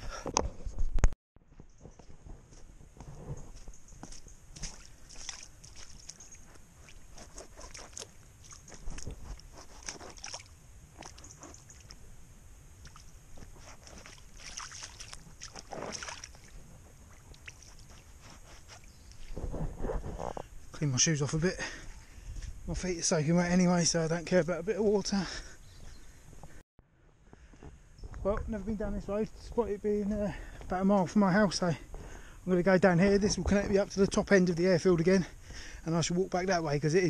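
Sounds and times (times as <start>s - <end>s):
footsteps splashing through water: 4.1s - 12.0s, 13.7s - 18.1s.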